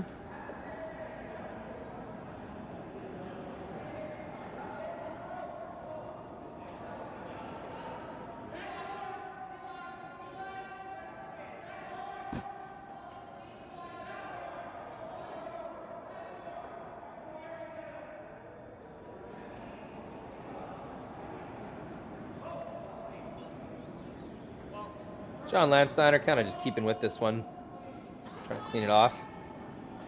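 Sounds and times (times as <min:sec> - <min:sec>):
players' voices echoing: 0:20.2 - 0:30.0.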